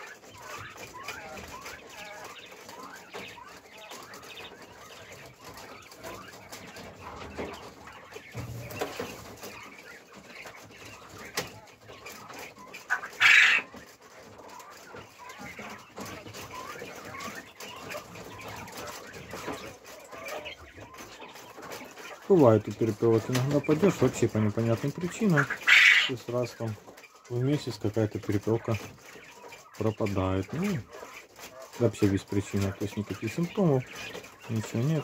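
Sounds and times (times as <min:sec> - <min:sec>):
quail chirping and clucking: 0:00.0 - 0:35.0.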